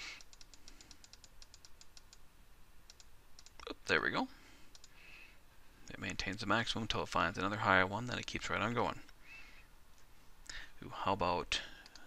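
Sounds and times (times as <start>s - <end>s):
rapid computer mouse clicks: 0.1s - 2.2s, 2.9s - 3.7s, 4.7s - 5.0s, 11.8s - 12.0s.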